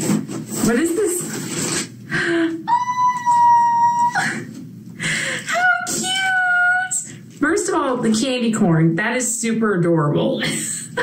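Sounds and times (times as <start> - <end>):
woman squealing: 2.6 - 4.5.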